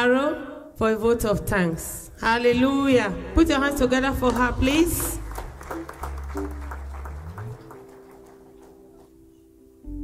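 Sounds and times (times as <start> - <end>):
congregation clapping: 4.2 - 9.3
keyboard sustained notes: 4.3 - 10.0.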